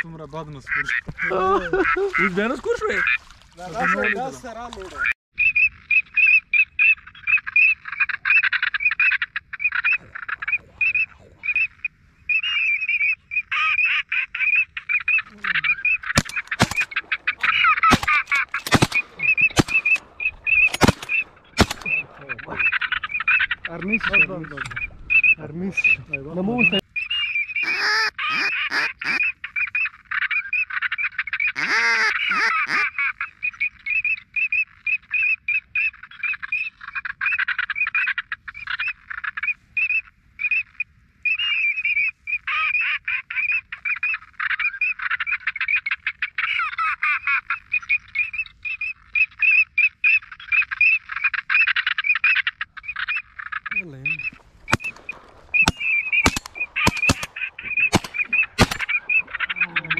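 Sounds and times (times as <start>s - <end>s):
ducks calling: 0.0s - 59.9s
sharp cracks: 16.0s - 23.2s, 54.2s - 59.5s
loud low duck quacks: 27.6s - 29.2s, 31.6s - 33.2s.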